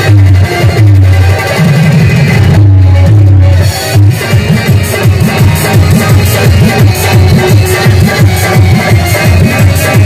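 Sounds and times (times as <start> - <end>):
electronic keyboard: 0.0 - 10.0
heavy bass beat: 0.0 - 10.0
stage music over loudspeakers: 0.0 - 10.0.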